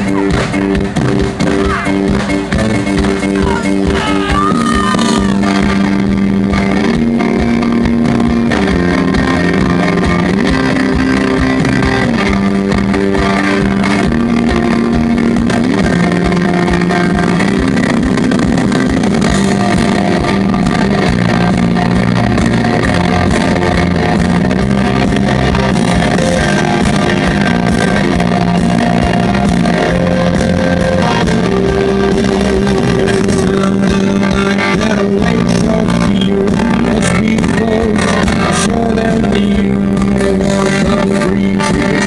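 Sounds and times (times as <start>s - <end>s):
bass guitar: 0.0s - 42.0s
drums: 0.0s - 42.0s
electric guitar: 0.0s - 42.0s.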